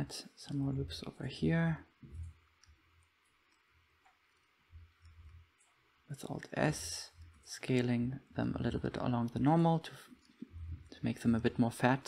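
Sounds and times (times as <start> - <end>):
soft low thumps: 2.0 - 2.6, 10.5 - 11.0.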